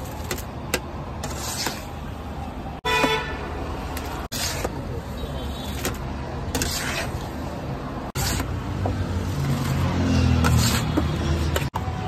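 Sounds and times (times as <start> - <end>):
roadside traffic noise: 0.0 - 12.0
vehicle horn honking: 2.8 - 3.4.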